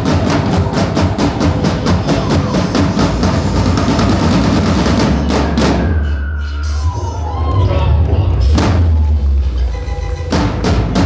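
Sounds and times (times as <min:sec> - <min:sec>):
snare drums rapid strokes: 0:00.0 - 0:05.8.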